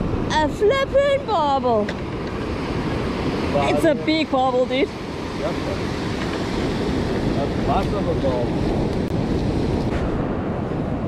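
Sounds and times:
wind buffeting microphone: 0.0s - 11.0s
surf breaking on beach: 2.0s - 11.0s.

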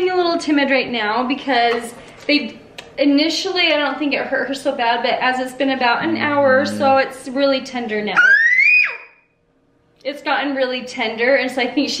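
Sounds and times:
toddler squealing: 8.2s - 9.2s.

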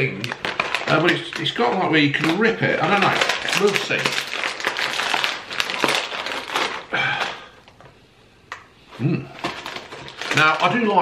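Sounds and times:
crisp packet crinkling: 0.0s - 7.8s, 9.3s - 11.0s.

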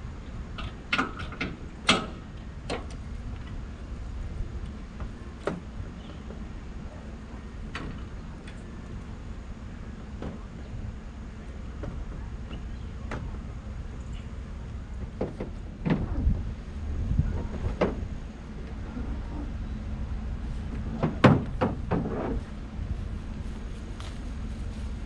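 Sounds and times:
low steady rumble: 0.0s - 25.0s.

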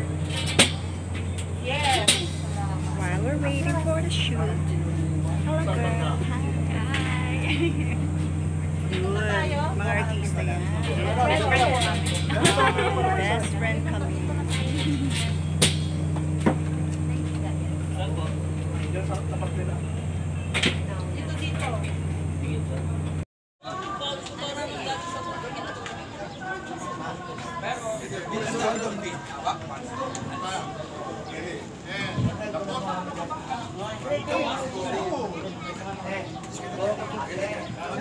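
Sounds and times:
low machine hum: 0.0s - 23.3s
people talking: 0.0s - 38.0s.

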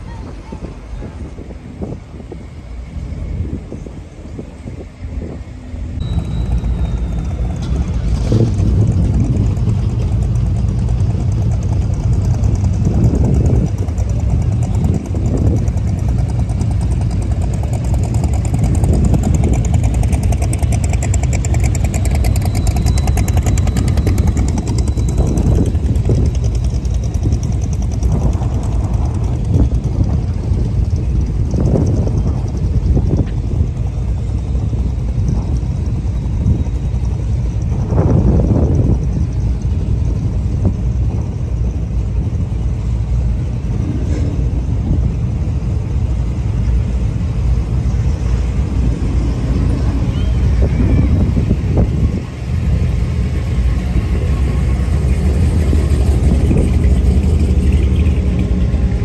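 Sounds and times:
car engines driving past: 1.3s - 59.0s.

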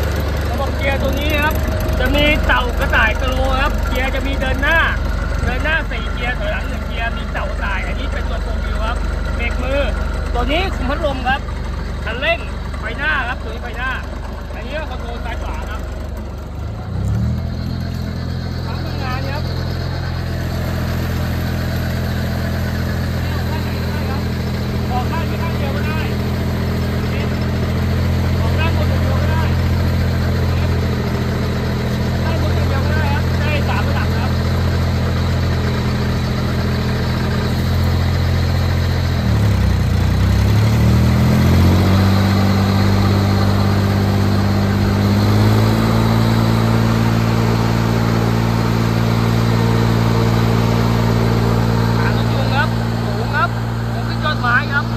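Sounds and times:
sprayer engine running: 0.0s - 54.9s.

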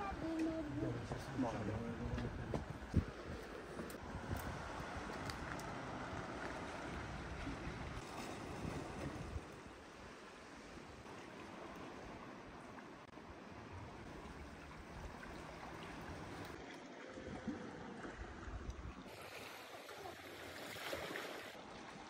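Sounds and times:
wind: 0.0s - 22.0s
sea noise: 2.7s - 22.0s.

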